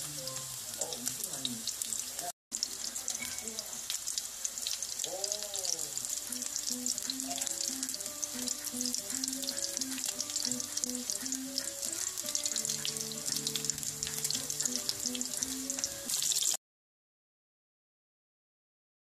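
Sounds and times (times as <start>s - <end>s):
food deep-frying in hot oil: 0.0s - 16.6s.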